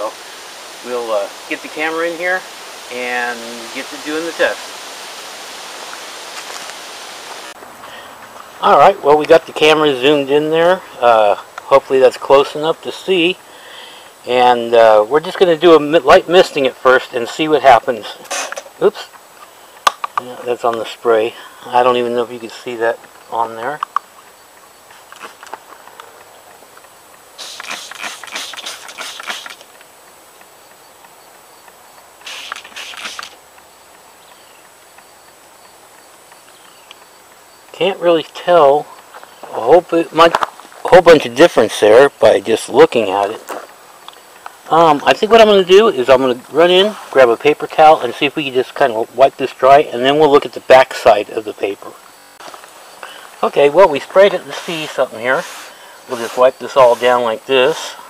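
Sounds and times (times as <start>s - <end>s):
steady outdoor hiss: 0.0s - 58.0s
spray bottle squirting: 27.4s - 29.7s, 32.2s - 33.4s.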